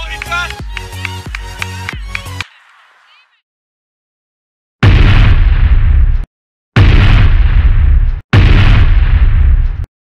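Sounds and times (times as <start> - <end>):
cinematic boom hits: 4.8 - 6.2, 6.8 - 9.9.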